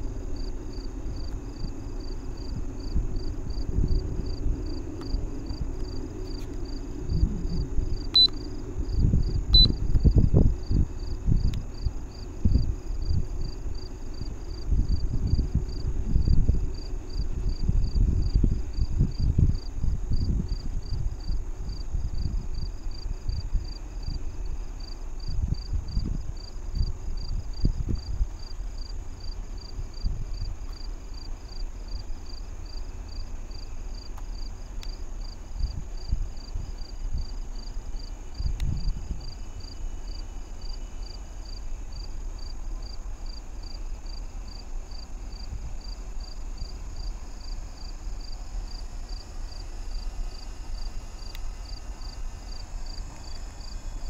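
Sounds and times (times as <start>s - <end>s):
gusty low rumble: 0.0s - 24.4s, 38.3s - 39.5s
insects chirping: 0.0s - 54.0s.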